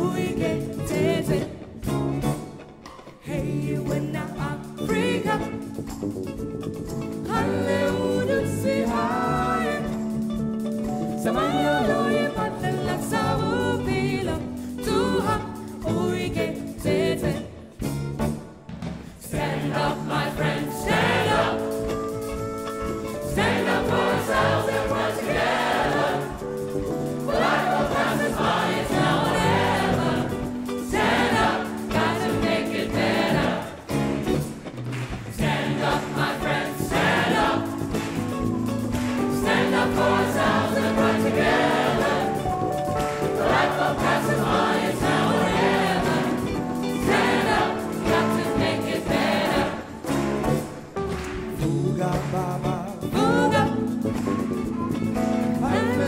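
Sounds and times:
choir singing: 0:00.0 - 0:01.7, 0:03.2 - 0:05.7, 0:07.2 - 0:10.2, 0:11.2 - 0:17.7, 0:19.2 - 0:34.5, 0:35.3 - 0:50.4
live band with keyboard and guitars: 0:00.0 - 0:56.0.

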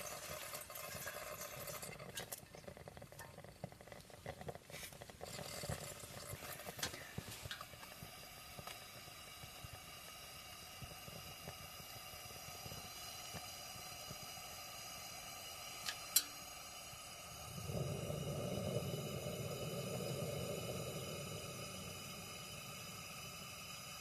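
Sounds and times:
camping lantern hissing: 0:00.0 - 0:24.0.

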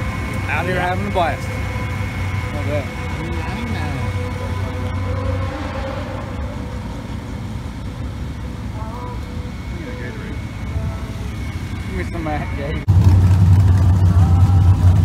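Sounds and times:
thin steady whines: 0:00.0 - 0:15.0
vehicle engine idling: 0:00.0 - 0:15.0
faint voices: 0:08.4 - 0:12.9.

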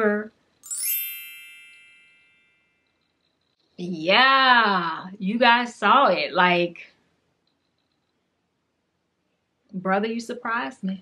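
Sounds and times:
bright chime ringing: 0:00.6 - 0:02.8.

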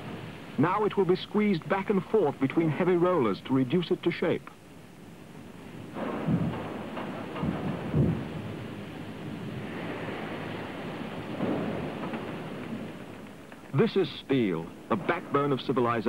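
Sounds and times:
steady rushing hiss: 0:00.0 - 0:16.0
heavy low rumbles and thuds: 0:05.8 - 0:13.7.

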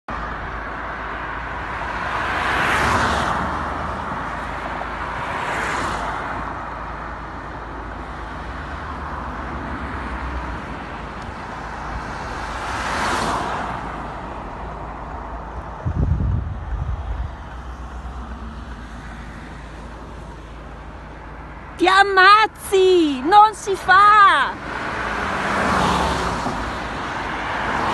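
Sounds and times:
road and tyre noise: 0:00.1 - 0:27.9
vehicles passing: 0:00.1 - 0:27.9.

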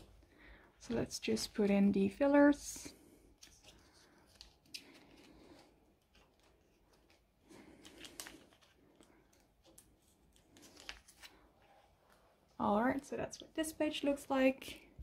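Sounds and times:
plastic sleeves rustling: 0:00.0 - 0:15.0.

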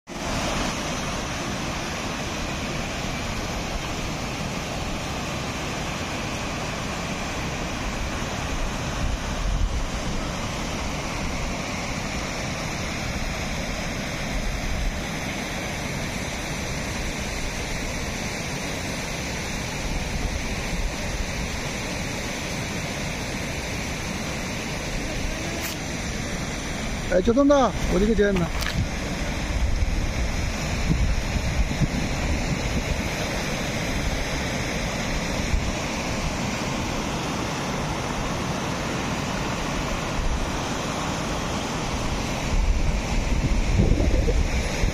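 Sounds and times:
river water rushing over a weir: 0:00.1 - 0:44.9
wind buffeting the microphone: 0:25.0 - 0:34.2, 0:42.0 - 0:44.9.

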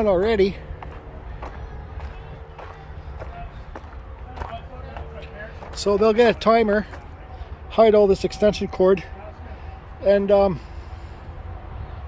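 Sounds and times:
footsteps on gravel: 0:00.5 - 0:07.2
man's voice: 0:04.2 - 0:07.0.

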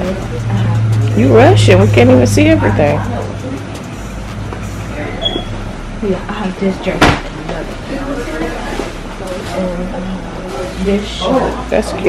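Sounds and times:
low hum: 0:00.0 - 0:11.3
faint voices: 0:00.0 - 0:12.0.

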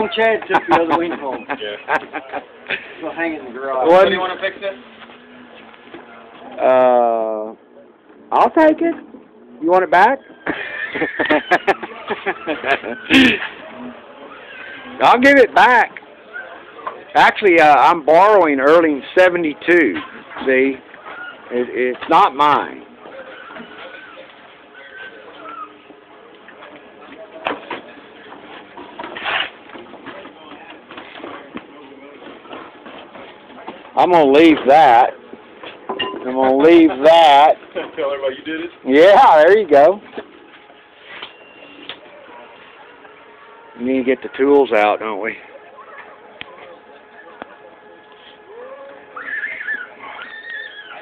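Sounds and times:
faint background talk: 0:10.4 - 0:22.2, 0:22.8 - 0:38.9, 0:40.0 - 0:51.0.

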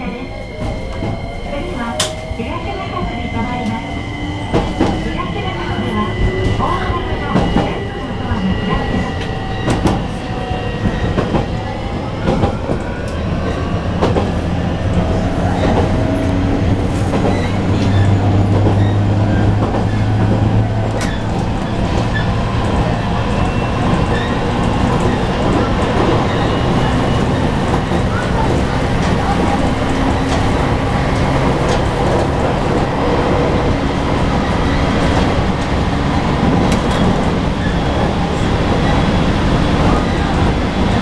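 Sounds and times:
train running gear rumble: 0:00.0 - 0:41.0.

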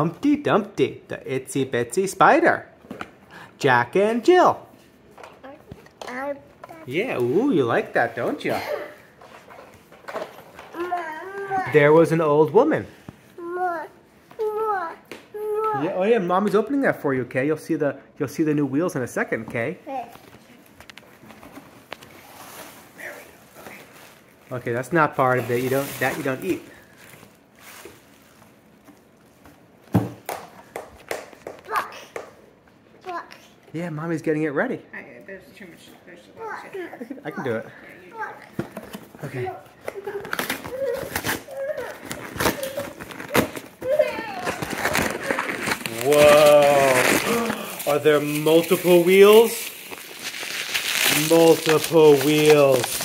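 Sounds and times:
toddlers babbling: 0:10.7 - 0:11.9, 0:13.4 - 0:16.0
plastic bag clicks and rustles: 0:40.0 - 0:53.0.

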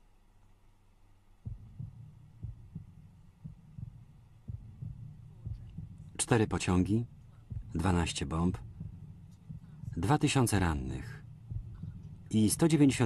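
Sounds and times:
faint hum: 0:00.0 - 0:13.0
deep low thumps: 0:01.4 - 0:13.0
low rumble: 0:01.5 - 0:13.0.

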